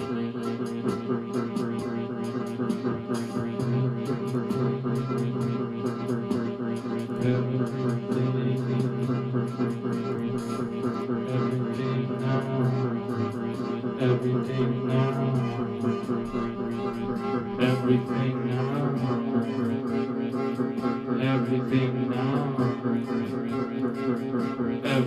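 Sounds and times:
electronic keyboard music: 0:00.0 - 0:25.0.

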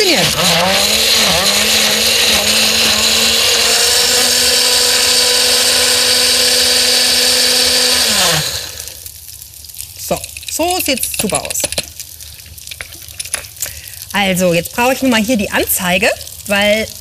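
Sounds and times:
blender motor running: 0:00.0 - 0:09.0.

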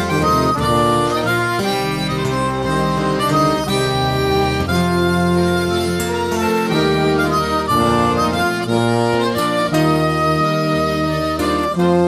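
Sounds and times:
harmonica folk melody: 0:00.0 - 0:12.0.

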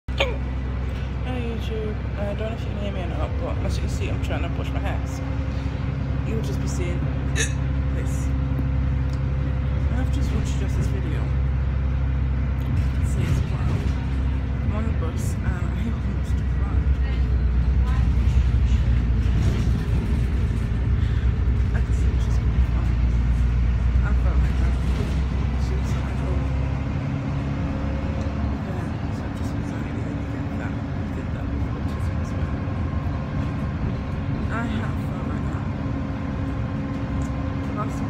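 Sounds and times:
bus engine rumble: 0:00.0 - 0:38.0
road noise: 0:00.0 - 0:38.0.

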